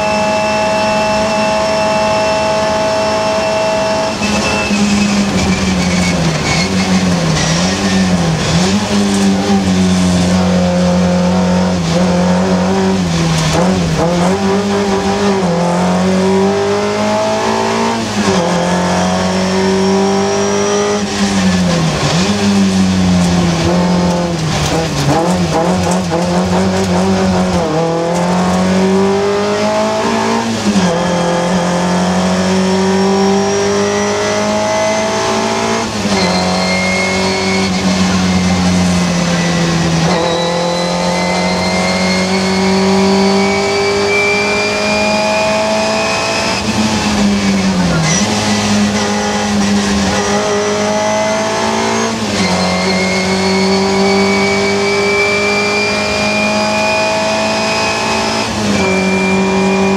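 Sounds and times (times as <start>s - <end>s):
car engine revving through gears: 0.0s - 59.9s.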